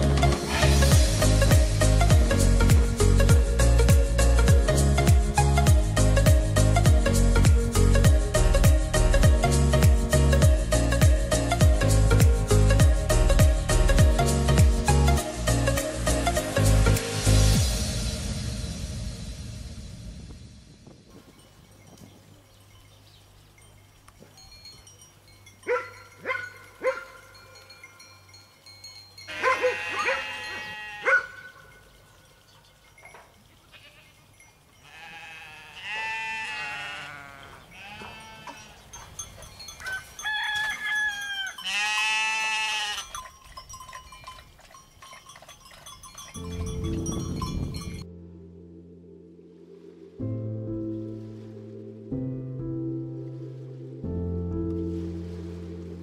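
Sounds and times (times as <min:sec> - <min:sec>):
goats and sheep bleating: 0:29.3 - 0:31.8, 0:33.6 - 0:39.1, 0:39.8 - 0:43.2.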